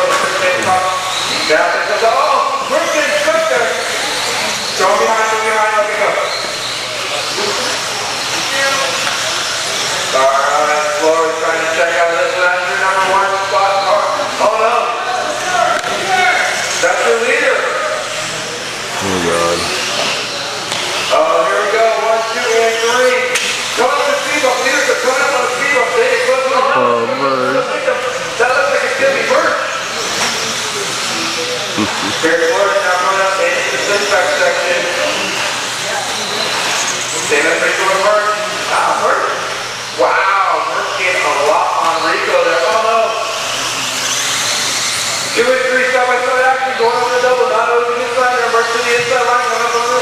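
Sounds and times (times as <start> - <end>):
race commentary speech: 19.0 - 19.9, 21.1 - 29.8, 31.7 - 35.4, 45.3 - 50.0
electric rc buggies hissing: 43.2 - 45.4.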